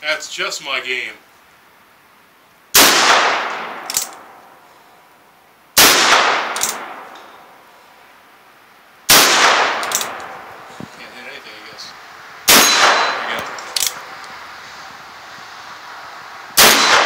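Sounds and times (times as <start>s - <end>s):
revolver gunshots: 2.7s - 4.4s, 5.8s - 7.2s, 9.1s - 10.5s, 12.4s - 14.1s, 16.6s - 17.0s
sharp metallic click: 3.8s - 4.5s, 6.5s - 7.4s, 9.8s - 10.4s, 12.5s - 14.3s.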